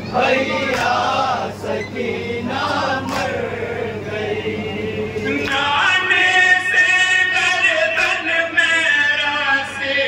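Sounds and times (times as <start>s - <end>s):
men chanting over loudspeaker: 0.1s - 10.0s.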